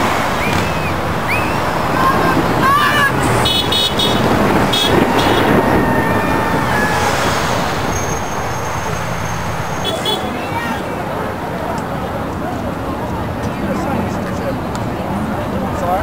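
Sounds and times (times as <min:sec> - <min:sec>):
traffic rushing: 0:00.0 - 0:16.0
car horn toots: 0:03.2 - 0:05.7, 0:09.8 - 0:10.4.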